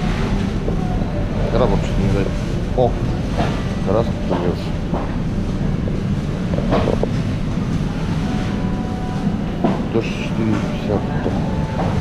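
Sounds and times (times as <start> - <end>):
low rumble of store background: 0.0 - 12.0.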